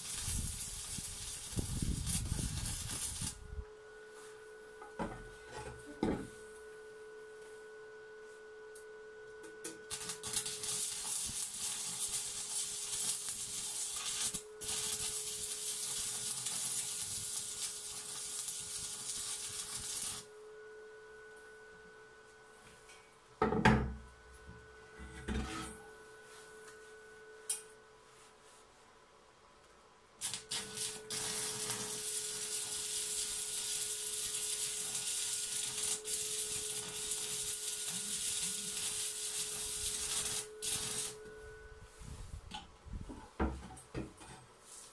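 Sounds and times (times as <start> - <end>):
welding arc crackling: 0.0 - 3.4, 9.8 - 20.3, 30.2 - 41.2.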